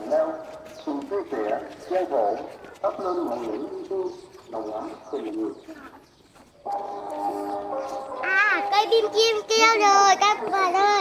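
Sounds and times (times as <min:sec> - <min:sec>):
high-pitched voice: 0:08.2 - 0:11.0.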